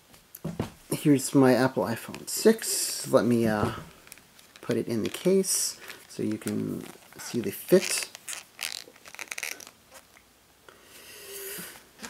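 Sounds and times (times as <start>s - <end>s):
phone case rubbing and scraping: 6.0s - 10.1s.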